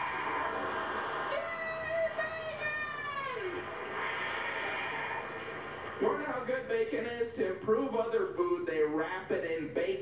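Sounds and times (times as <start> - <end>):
high drawn-out aaah: 0.0 - 5.6
audience applauding: 0.0 - 6.8.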